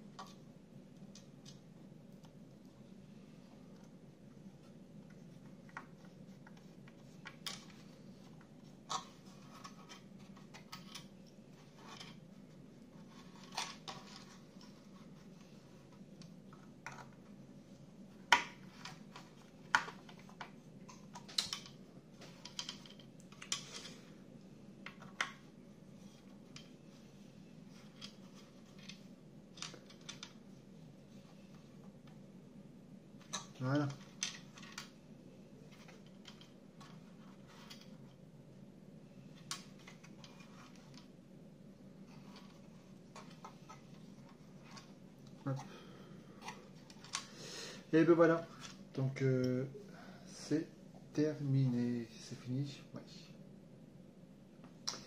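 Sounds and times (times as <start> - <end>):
faint steady hum: 0.0 - 55.0
plastic parts clicking and scraping: 5.0 - 17.3, 18.2 - 24.1, 27.7 - 30.4, 33.2 - 35.0, 35.7 - 38.2, 39.4 - 41.1, 42.0 - 45.7, 46.4 - 47.4.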